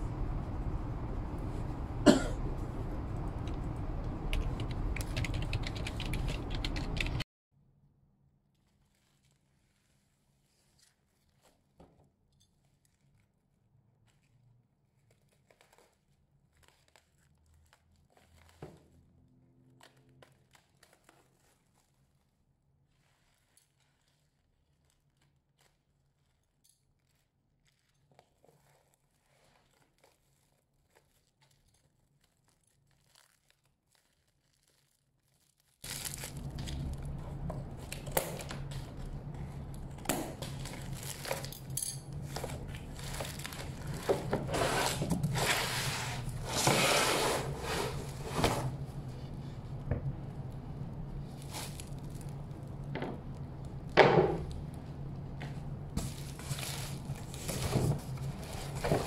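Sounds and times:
plastic wrap crinkling: 0:08.6 - 0:11.8, 0:12.5 - 0:46.5, 0:49.0 - 0:59.0
board scraping against cardboard: 0:44.1 - 0:48.8.

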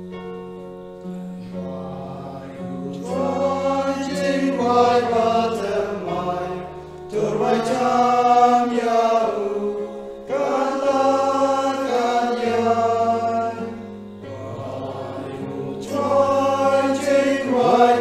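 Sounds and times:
keyboard holding low notes: 0:00.0 - 0:18.0
choir singing a hymn: 0:01.0 - 0:18.0.

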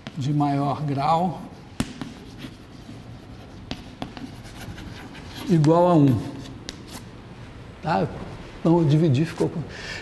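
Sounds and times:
chalk tap against board: 0:00.0 - 0:00.3, 0:01.8 - 0:02.6, 0:03.5 - 0:07.0
chalk scratching on blackboard: 0:00.0 - 0:07.1.

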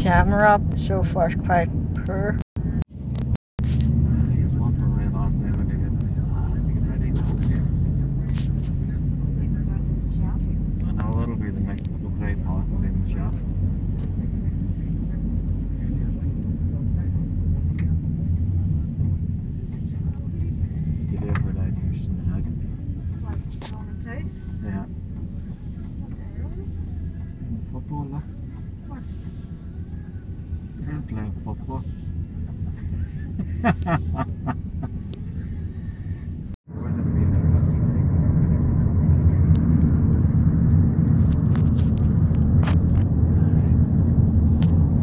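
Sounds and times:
car engine and tyre rumble: 0:00.0 - 0:45.0
faint voices talking: 0:04.0 - 0:33.7, 0:34.9 - 0:45.0.

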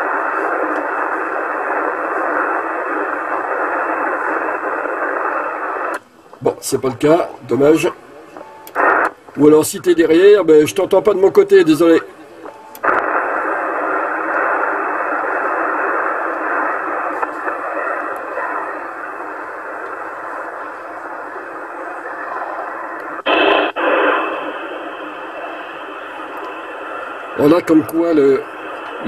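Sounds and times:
radio receiver static hiss: 0:00.0 - 0:29.0
brief burst of radio noise: 0:22.0 - 0:27.5.

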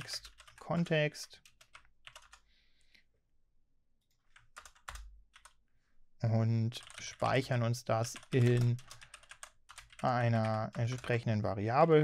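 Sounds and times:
typing on computer keyboard: 0:00.0 - 0:02.4, 0:04.2 - 0:05.6, 0:06.8 - 0:11.3.

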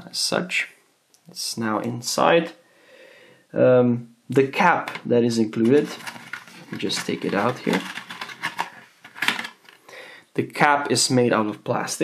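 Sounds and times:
plastic cap clicks and scrapes: 0:04.8 - 0:09.8.

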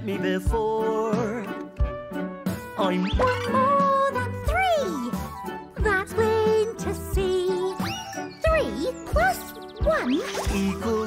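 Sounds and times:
jingly cartoon music: 0:00.0 - 0:11.0.

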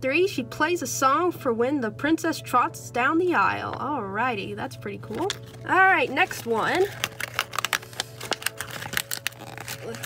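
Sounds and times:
plastic clicks and crinkles: 0:05.1 - 0:10.0.

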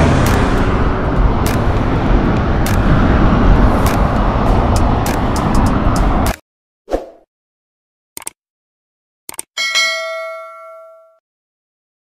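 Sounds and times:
bright bell ding: 0:09.6 - 0:11.2.

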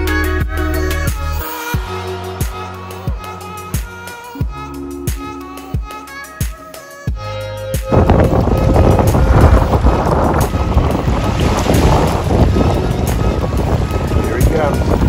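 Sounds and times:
wind buffeting microphone: 0:07.8 - 0:15.0
water rushing past boat: 0:07.9 - 0:15.0.

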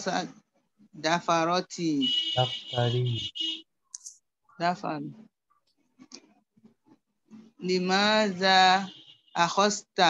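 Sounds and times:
person speaking: 0:01.1 - 0:03.2.

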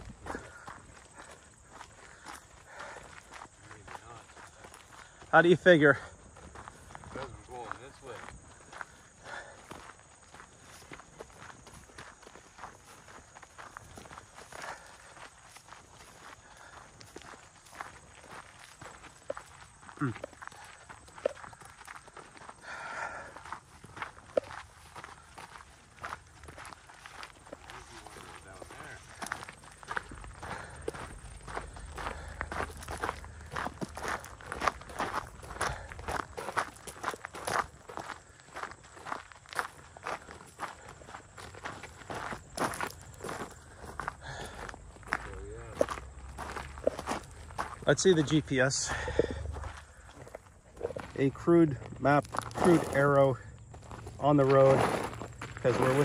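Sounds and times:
footsteps on rough trail: 0:00.0 - 0:56.0.

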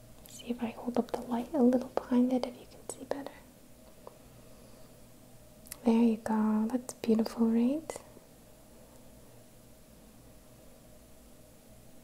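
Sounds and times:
woman whispering: 0:00.3 - 0:03.5.

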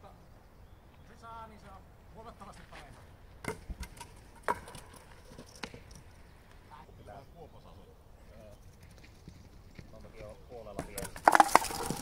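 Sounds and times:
wooden bat striking wooden pins: 0:10.8 - 0:12.0.

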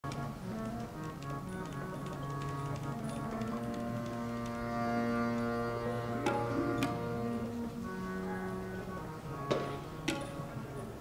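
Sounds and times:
harmonium chords: 0:00.1 - 0:10.8
light tabla taps: 0:06.2 - 0:07.0, 0:09.4 - 0:10.4.

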